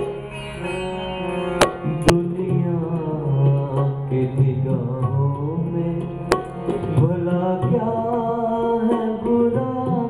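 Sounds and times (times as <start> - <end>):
harmonium: 0.0 - 10.0
man singing: 1.8 - 10.0.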